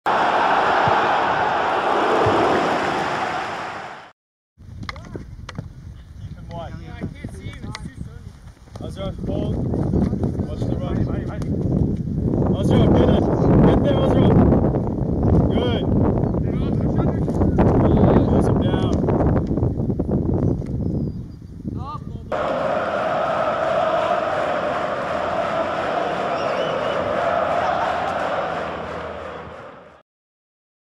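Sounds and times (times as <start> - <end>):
crowd cheering and chanting: 0.1 - 4.1, 22.3 - 30.0
outdoor field sound: 22.3 - 30.0.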